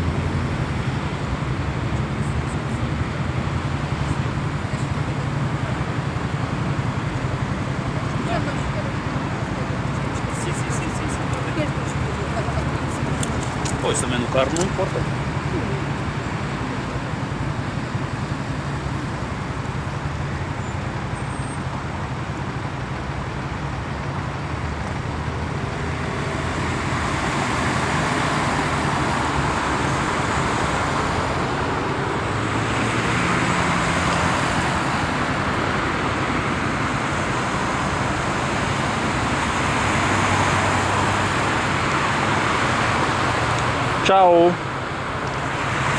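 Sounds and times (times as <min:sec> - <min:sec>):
cars driving past: 0:00.0 - 0:45.9.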